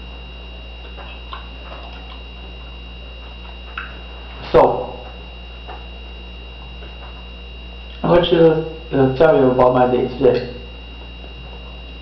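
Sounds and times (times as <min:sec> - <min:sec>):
faint high whine: 0:00.0 - 0:12.0
steady low hum: 0:00.0 - 0:12.0
chewing mouth clicks: 0:00.8 - 0:02.4.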